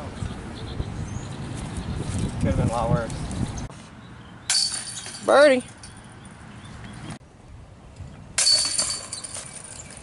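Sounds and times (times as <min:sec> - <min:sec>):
basket chains rattling: 0:04.5 - 0:06.3, 0:08.4 - 0:10.0.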